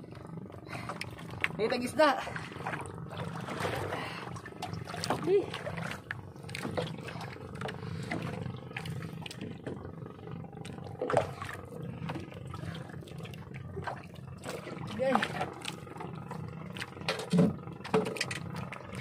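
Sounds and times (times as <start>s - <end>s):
steady low drone: 0.0s - 19.0s.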